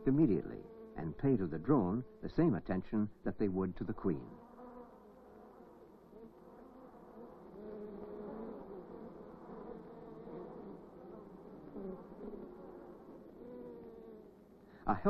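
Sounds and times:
bees humming: 0.0s - 15.0s.

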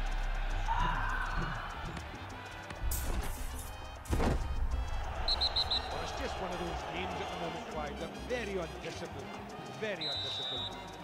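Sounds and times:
music: 0.0s - 11.0s
football match broadcast audio: 3.6s - 11.0s.

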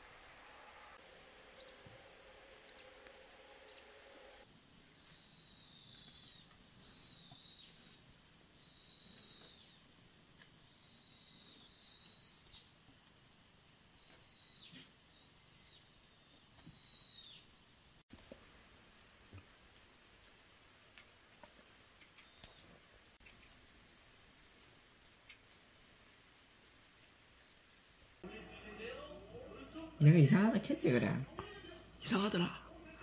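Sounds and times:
faint high-pitched bird calls: 4.9s - 9.9s, 10.6s - 12.7s, 14.0s - 17.5s.

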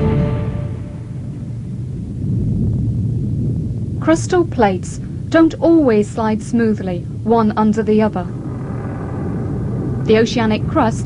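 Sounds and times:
low steady rumbling: 0.0s - 11.0s.

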